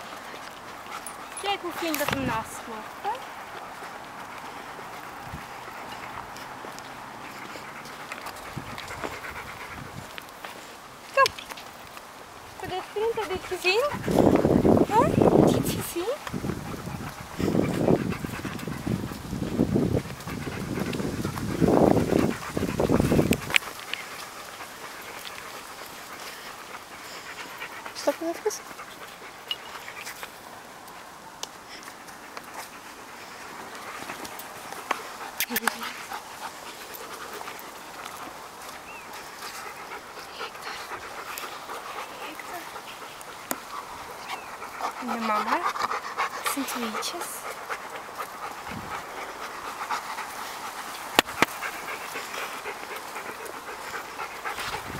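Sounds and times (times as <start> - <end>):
dog panting: 0.0 - 54.9.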